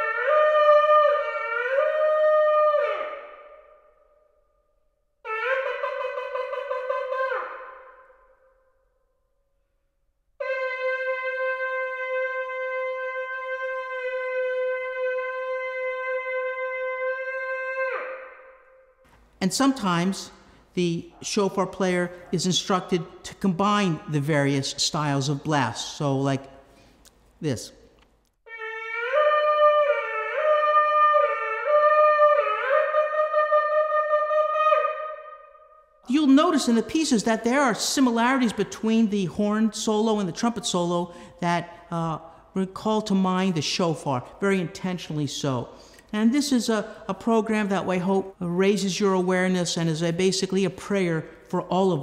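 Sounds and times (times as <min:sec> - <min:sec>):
shofar blast: 0:00.0 - 0:04.1, 0:05.2 - 0:08.6, 0:10.4 - 0:19.0, 0:28.5 - 0:36.0
room echo: 0:00.0 - 0:52.0.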